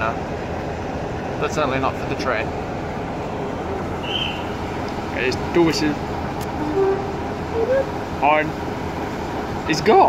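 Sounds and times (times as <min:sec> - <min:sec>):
moving train running noise: 0:00.0 - 0:10.0
voice calling out: 0:06.6 - 0:08.0.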